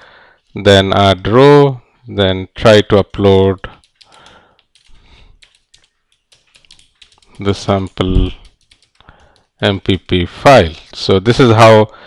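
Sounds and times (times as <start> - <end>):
faint keyboard typing: 3.1 - 10.3.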